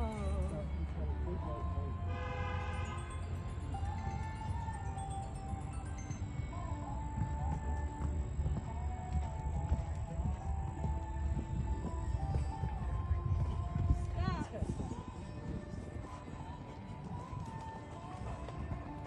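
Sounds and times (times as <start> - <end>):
background music: 0.0 - 19.0
horse hoofbeats on sand: 6.3 - 19.0.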